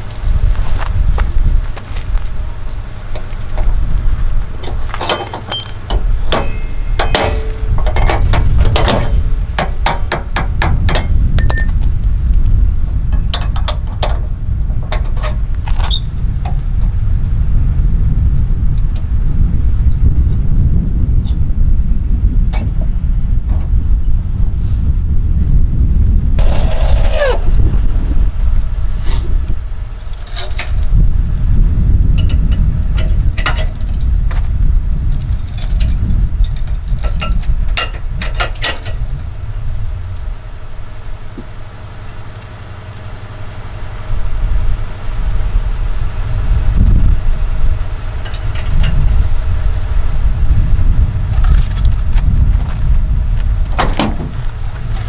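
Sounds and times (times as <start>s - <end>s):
loud low rumble: 0.0s - 38.3s, 38.9s - 55.0s
metal clinking of hitch hardware: 4.6s - 12.2s, 30.0s - 34.4s, 35.1s - 39.2s.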